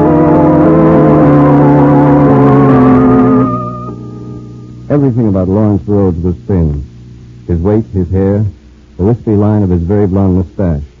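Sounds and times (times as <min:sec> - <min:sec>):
sustained organ chords: 0:00.0 - 0:11.0.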